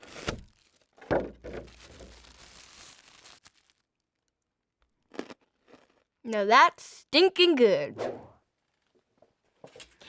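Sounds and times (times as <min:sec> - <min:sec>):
plastic bag crinkling: 0:00.0 - 0:04.4.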